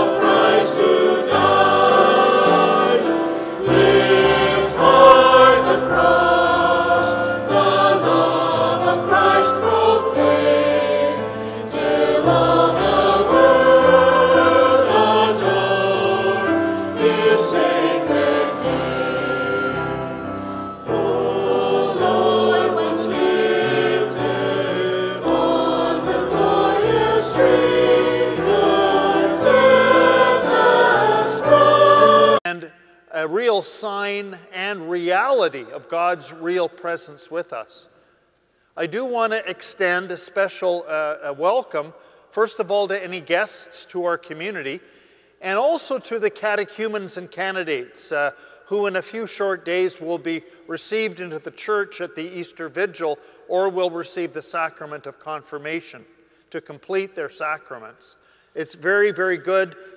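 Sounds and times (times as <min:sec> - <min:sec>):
instrumental accompaniment: 0:00.0 - 0:32.4
choir singing a hymn: 0:00.0 - 0:32.5.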